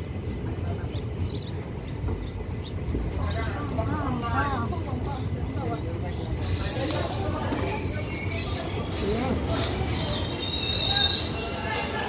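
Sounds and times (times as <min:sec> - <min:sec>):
low train rumble: 0:00.0 - 0:12.0
train wheels squealing on rails: 0:00.0 - 0:12.0.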